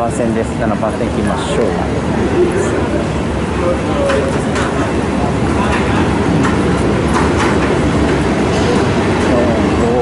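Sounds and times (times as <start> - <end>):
rumble of standing trains: 0.0 - 10.0.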